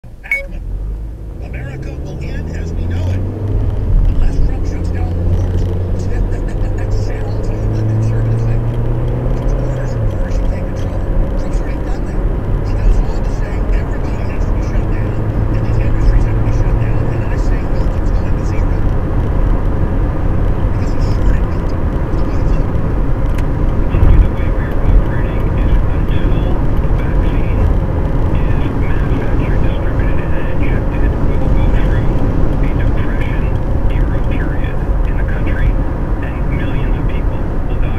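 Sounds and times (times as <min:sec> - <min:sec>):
car engine accelerating: 0:00.0 - 0:37.9
tyre and road noise: 0:00.0 - 0:37.9.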